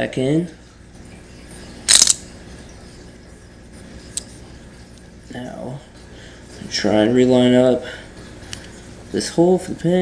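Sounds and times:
metal parts clacking: 0:01.9 - 0:02.2.

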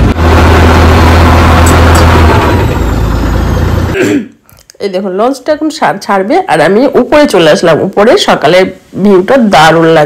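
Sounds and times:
boat engine running: 0:00.0 - 0:04.0.

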